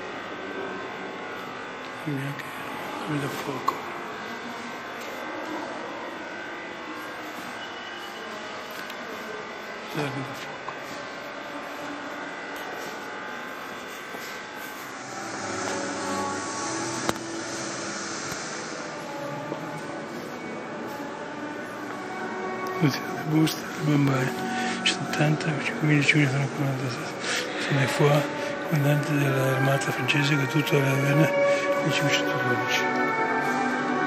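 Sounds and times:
indistinct chatter: 0.0 - 34.0.

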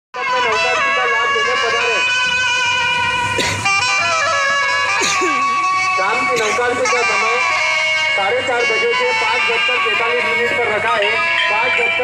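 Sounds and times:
band music from loudspeakers: 0.2 - 12.0.

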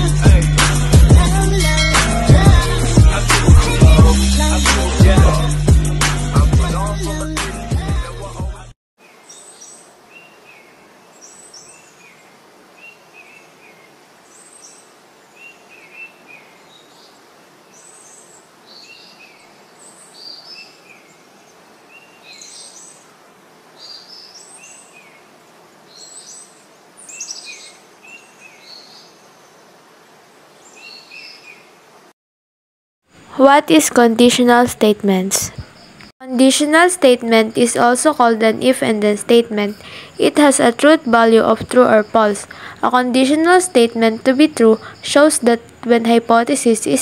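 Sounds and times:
outdoor background hiss: 0.0 - 8.4, 9.0 - 32.2, 33.0 - 47.0
small birds chirping: 9.0 - 23.1, 23.7 - 29.8, 30.5 - 31.8, 37.2 - 47.0.

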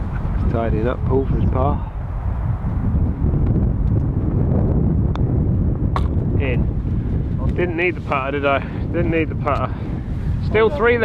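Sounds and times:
wind buffeting microphone: 0.0 - 11.0
putter striking golf ball: 5.9 - 6.2.

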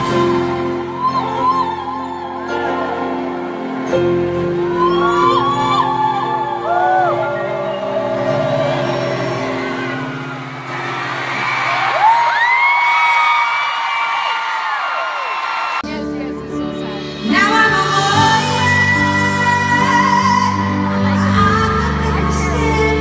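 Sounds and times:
keyboard chords: 0.0 - 12.3, 15.8 - 23.0
crowd whoops: 0.0 - 15.8
live pop vocal: 4.6 - 10.2, 15.9 - 23.0.

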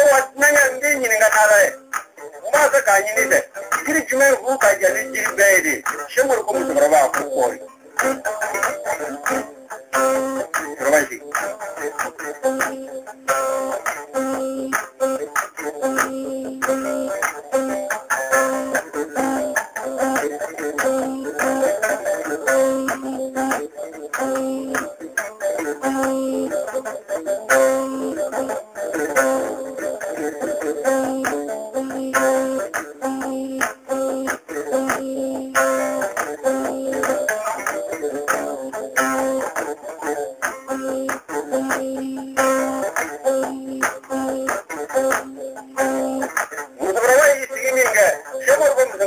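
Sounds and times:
plucked string instrument music: 0.0 - 49.0.

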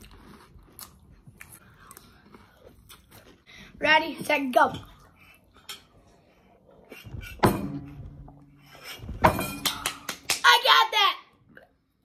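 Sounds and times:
dishes knocking: 9.1 - 10.0
child shouting excitedly: 10.3 - 11.3.

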